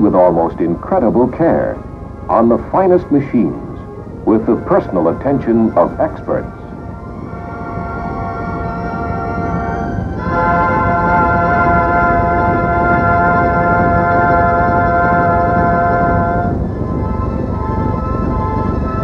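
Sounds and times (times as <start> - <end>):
sustained held music chords: 0.0 - 19.0.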